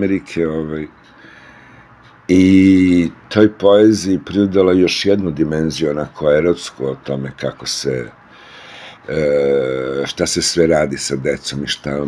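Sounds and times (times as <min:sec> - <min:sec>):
man drawing breath: 0:01.0 - 0:02.2, 0:08.2 - 0:09.1.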